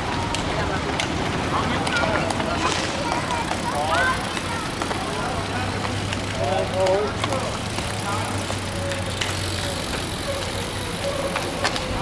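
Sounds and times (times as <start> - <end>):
outdoor noise: 0.0 - 12.0
people calling out: 8.2 - 12.0.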